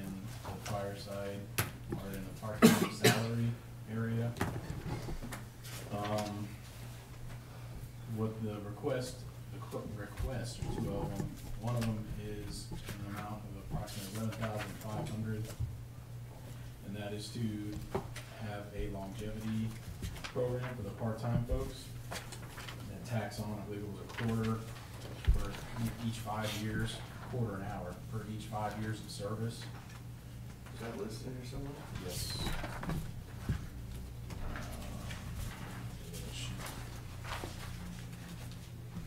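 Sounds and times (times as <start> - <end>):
man speaking in a low voice: 0.0 - 4.4, 5.8 - 6.6, 8.0 - 15.6, 16.8 - 22.0, 22.8 - 29.8, 30.7 - 32.8, 34.4 - 36.9
steady low hum: 0.0 - 39.0
sharp coughs: 2.6 - 3.4.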